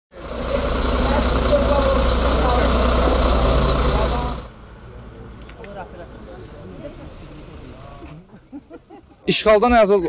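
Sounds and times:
diesel engine idling: 0.1s - 8.9s
people talking: 0.2s - 8.4s, 9.3s - 10.0s.

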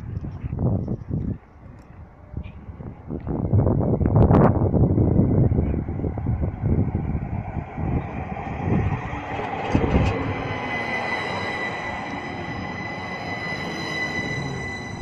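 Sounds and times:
tram low rumble: 0.0s - 15.0s.

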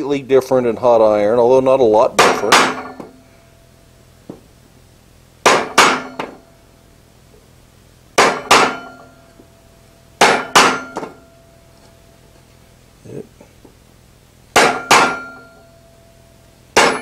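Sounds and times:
hammer striking steel chisel: 5.5s - 6.4s, 8.2s - 9.2s, 10.2s - 11.3s, 14.6s - 15.8s, 16.8s - 17.0s.

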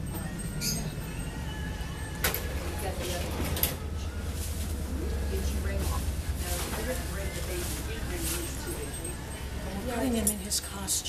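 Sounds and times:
faint voices: 0.0s - 11.0s
steady low hum: 0.0s - 11.0s.

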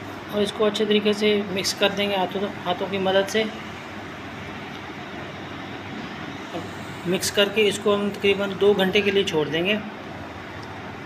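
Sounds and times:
steady hum and hiss: 0.0s - 11.0s.

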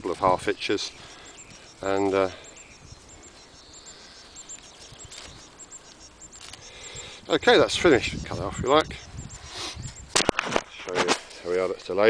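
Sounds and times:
small bird chirping: 0.0s - 10.1s.

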